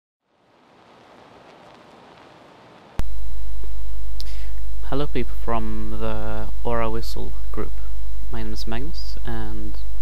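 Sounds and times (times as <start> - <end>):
faint hiss: 0.3 - 3.0
loud electrical mains hum: 0.3 - 10.0.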